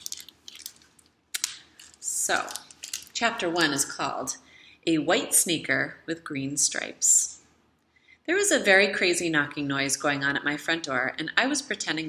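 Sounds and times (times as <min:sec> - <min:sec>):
book pages rustling: 0:00.0 - 0:01.1.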